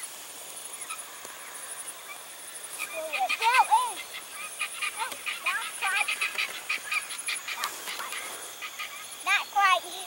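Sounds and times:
insects chirping in high trill: 0:00.0 - 0:10.0.

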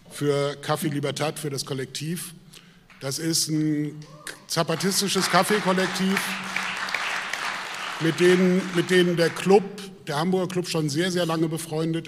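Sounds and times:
audience applauding: 0:04.7 - 0:09.6.

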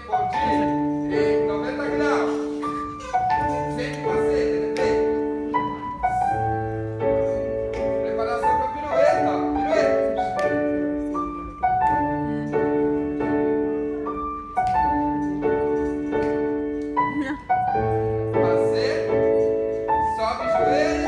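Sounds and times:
piano chords: 0:00.0 - 0:21.0.

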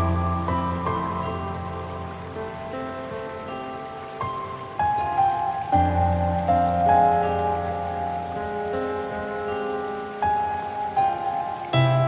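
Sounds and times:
slow solo piano music: 0:00.0 - 0:12.0
soft rain: 0:00.0 - 0:12.0.

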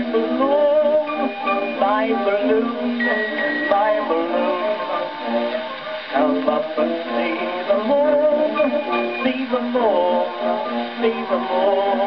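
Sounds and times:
man singing: 0:00.0 - 0:05.5, 0:06.1 - 0:12.0
old gramophone record music: 0:00.0 - 0:12.0
orchestral accompaniment: 0:00.0 - 0:12.0.

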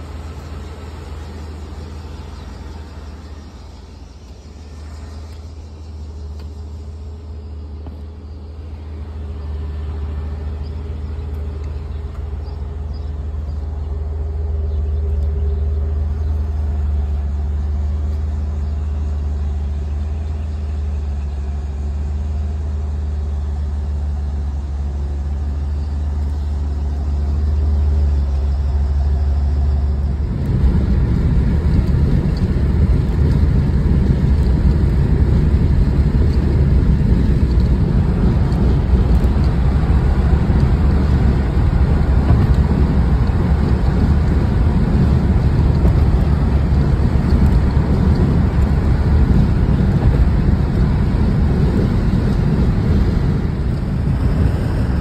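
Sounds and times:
car engine at highway speed: 0:00.0 - 0:55.0
car exhaust idling: 0:00.0 - 0:55.0
road noise: 0:00.0 - 0:55.0.

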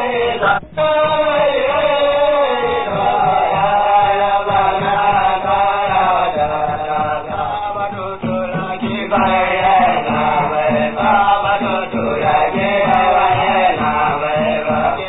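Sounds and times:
voices chanting long held lines: 0:00.0 - 0:15.0.

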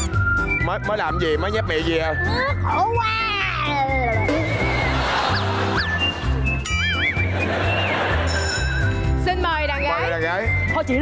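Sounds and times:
game show music with steady beat: 0:00.0 - 0:11.0.

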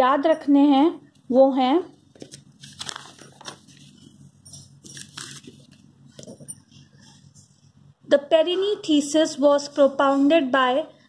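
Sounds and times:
paper rustling: 0:02.2 - 0:04.2, 0:04.8 - 0:06.4.

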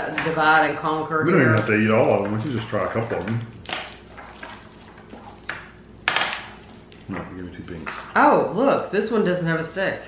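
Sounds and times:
plastic wrappers handled by hand: 0:02.1 - 0:08.1.

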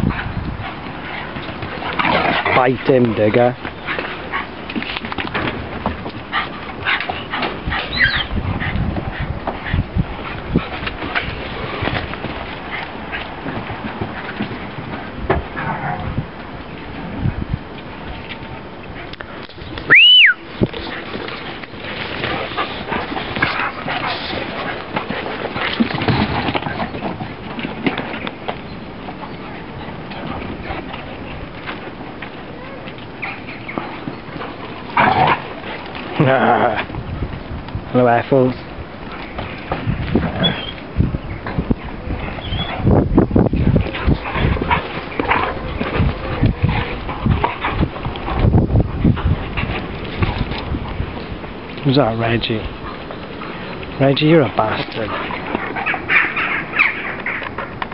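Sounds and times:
dogs scuffling: 0:00.0 - 0:57.9
dogs growling and yelping: 0:06.0 - 0:12.0, 0:29.1 - 0:37.0, 0:39.2 - 0:43.0, 0:43.6 - 0:51.2, 0:55.1 - 0:57.9
short high squeaks: 0:19.9 - 0:20.4, 0:40.4 - 0:40.8.

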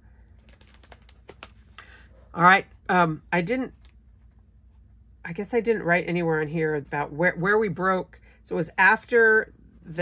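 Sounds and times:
album page turning: 0:00.4 - 0:02.0.

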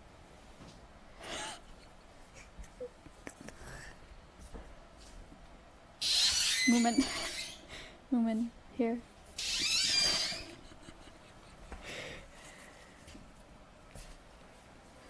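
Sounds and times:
woman laughing under her breath: 0:10.0 - 0:12.3.

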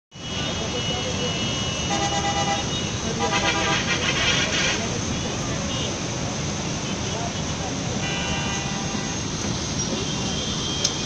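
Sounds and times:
heavy road traffic: 0:00.1 - 0:11.0
vehicle horns honking: 0:00.2 - 0:06.0, 0:08.0 - 0:11.0.

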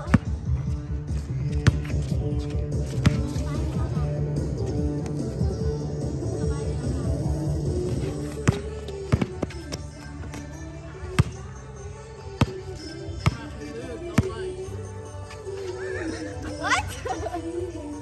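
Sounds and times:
background music with held notes: 0:00.0 - 0:18.0
basketball bouncing on hard court: 0:01.5 - 0:02.0, 0:02.9 - 0:03.4, 0:08.4 - 0:09.7, 0:11.1 - 0:11.4, 0:12.4 - 0:12.6, 0:13.2 - 0:13.5.

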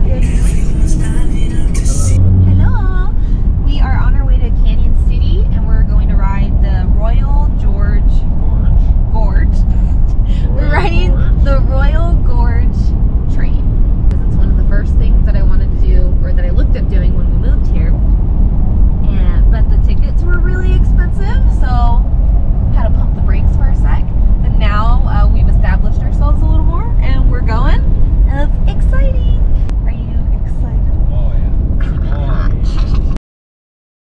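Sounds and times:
voices: 0:00.0 - 0:18.0, 0:19.0 - 0:22.1, 0:22.7 - 0:33.2
road rumble: 0:00.0 - 0:33.2
wind buffeting: 0:00.0 - 0:33.2.

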